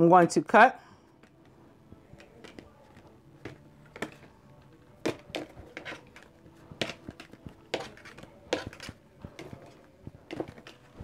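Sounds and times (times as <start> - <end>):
playing cards slapping and clicking: 2.1 - 11.0.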